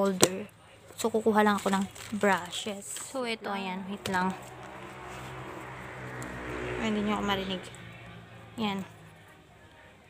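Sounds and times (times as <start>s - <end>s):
motor vehicle running: 1.6s - 10.0s.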